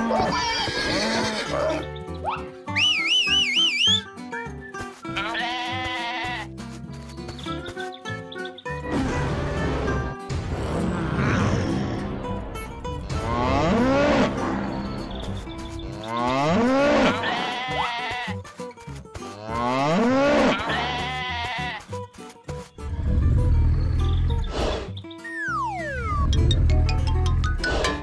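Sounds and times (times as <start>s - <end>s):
sheep bleating: 0.0s - 1.8s, 5.1s - 6.5s, 16.1s - 18.4s, 19.4s - 21.9s
background music: 0.0s - 28.0s.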